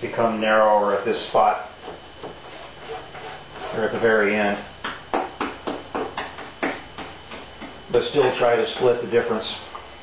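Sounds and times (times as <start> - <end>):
brush strokes scrubbing: 1.4 - 4.5.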